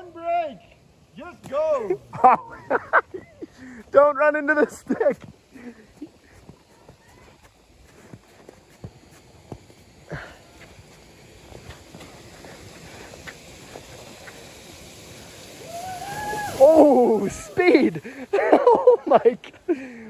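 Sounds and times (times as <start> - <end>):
crunching snow: 0.0 - 19.7
sliding hiss on snow: 0.0 - 20.0.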